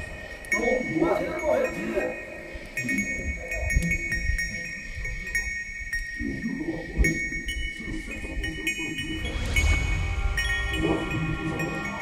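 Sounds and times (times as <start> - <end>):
high sustained electronic tones: 8.5 - 12.0.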